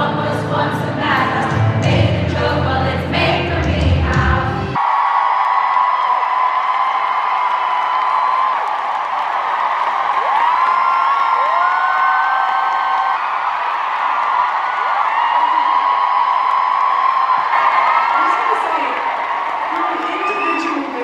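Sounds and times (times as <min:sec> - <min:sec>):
stadium crowd cheering: 0:04.7 - 0:21.0
high-pitched screams: 0:19.7 - 0:21.0.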